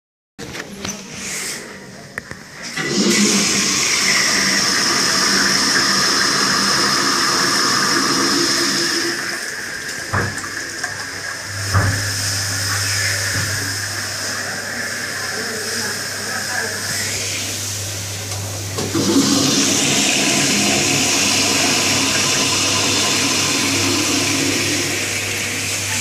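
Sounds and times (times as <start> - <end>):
toilet flushing: 2.4 - 26.0.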